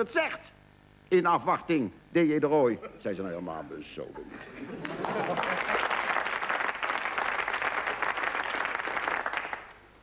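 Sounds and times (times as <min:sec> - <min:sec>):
audience applauding: 0:04.4 - 0:09.8.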